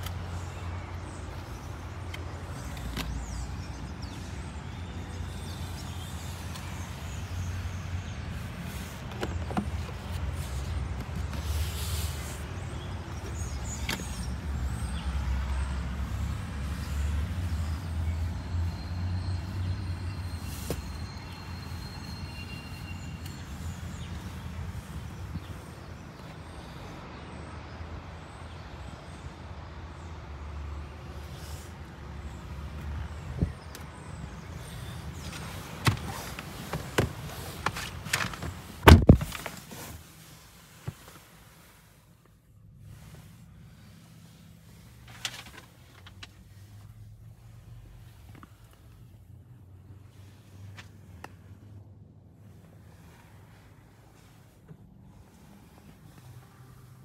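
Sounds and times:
car door shutting: 35.3 - 39.6.

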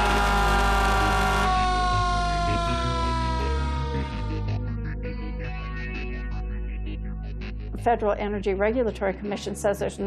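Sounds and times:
fire engine siren falling tone: 0.0 - 4.7
background music: 0.0 - 10.0.

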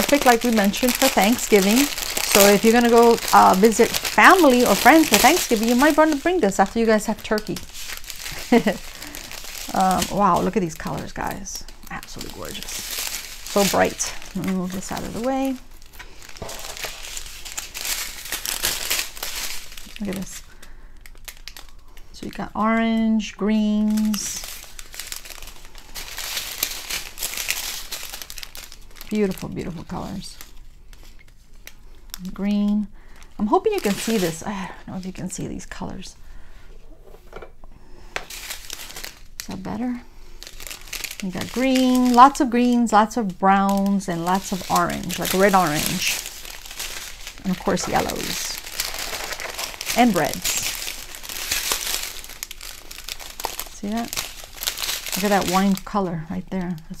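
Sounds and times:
plastic bags crinkling: 0.0 - 57.0.

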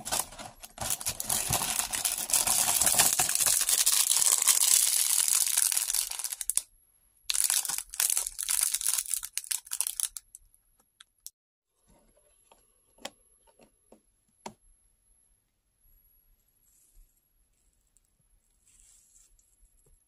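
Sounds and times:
plastic bag crinkling: 0.0 - 6.6, 7.3 - 10.4.

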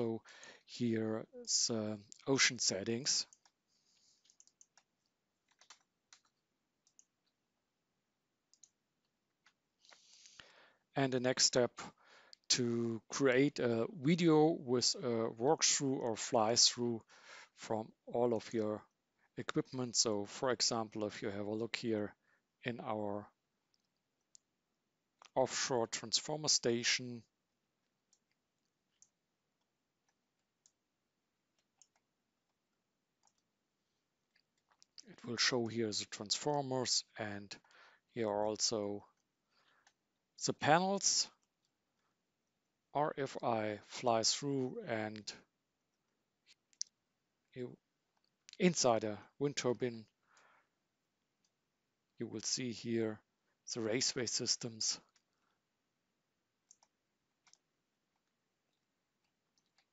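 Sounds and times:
faint computer mouse clicks: 3.3 - 4.9, 5.5 - 7.1, 31.8 - 32.0, 56.7 - 57.6.

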